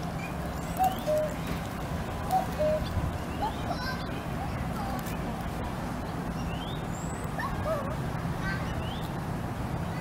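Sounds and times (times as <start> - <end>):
cuckoo calling: 0.2 - 1.4, 2.3 - 3.8.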